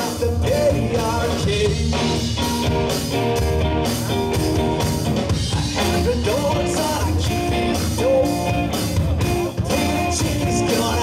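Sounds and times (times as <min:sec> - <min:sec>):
blues-rock band playing: 0:00.0 - 0:11.0.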